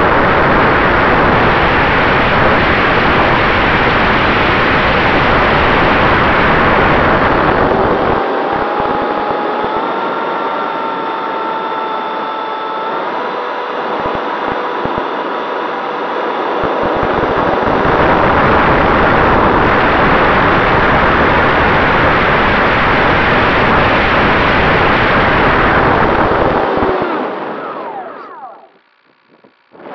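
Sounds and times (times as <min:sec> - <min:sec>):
rush of air and fan noise: 0:00.0 - 0:28.6
steady fan whine: 0:00.0 - 0:29.9.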